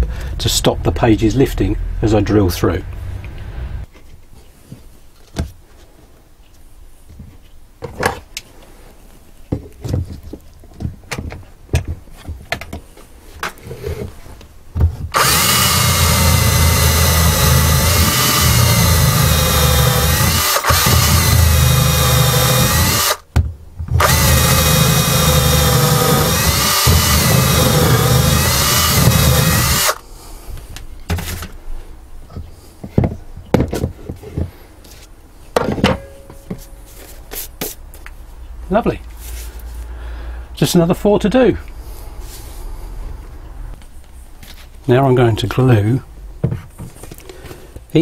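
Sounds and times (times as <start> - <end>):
loud wooden knocks: 14.8 - 30.0
power drill boring through books: 15.1 - 23.2, 24.0 - 30.0.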